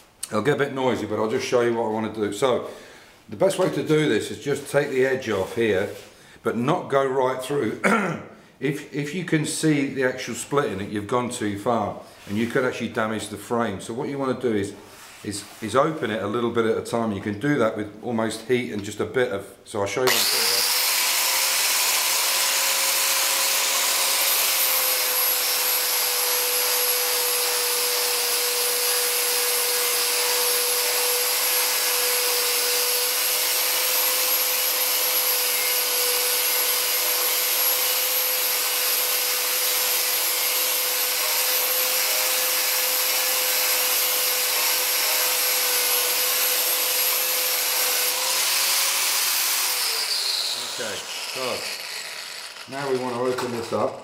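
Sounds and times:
angle grinder grinding metal: 0:20.0 - 0:54.0.

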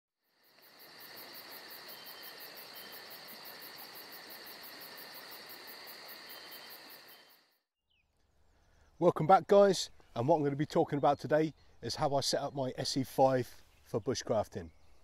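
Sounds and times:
insects chirring: 0:00.2 - 0:07.6.

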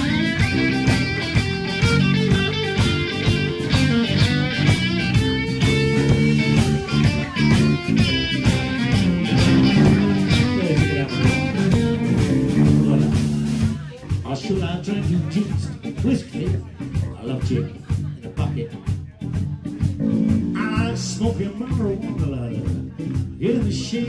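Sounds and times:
electric guitar: 0:00.0 - 0:14.2, 0:15.4 - 0:23.9
bass guitar: 0:00.0 - 0:24.0
drums: 0:00.0 - 0:24.0
harmonica: 0:09.4 - 0:10.5.

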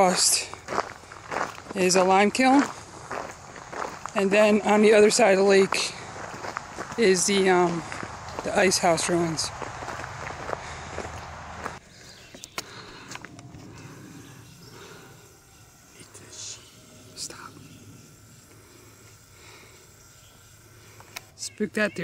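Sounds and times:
footsteps on gravel: 0:00.0 - 0:14.0.

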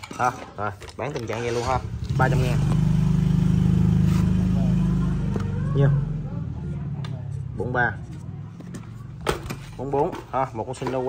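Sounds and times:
engine humming: 0:01.3 - 0:10.8.

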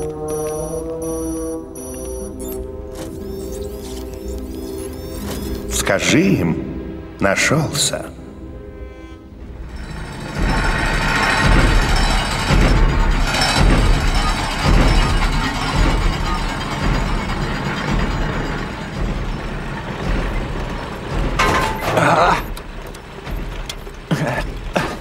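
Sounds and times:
tracked vehicle rumble and clanking: 0:09.3 - 0:25.0
heavy low thuds: 0:09.5 - 0:25.0.

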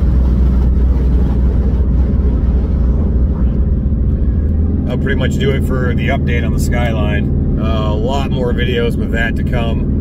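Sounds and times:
car engine rumble: 0:00.0 - 0:10.0
road noise: 0:00.0 - 0:10.0.

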